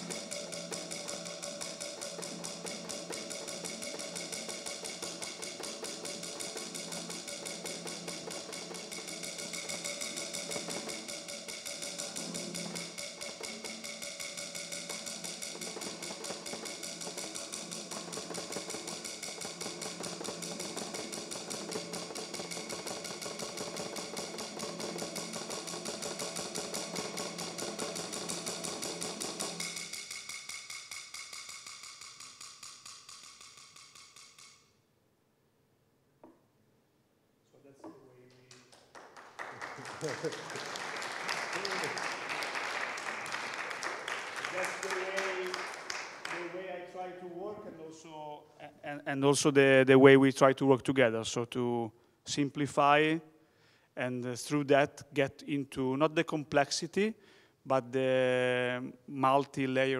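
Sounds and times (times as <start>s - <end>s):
drum roll with mallet: 0.0s - 34.5s, 38.9s - 47.2s.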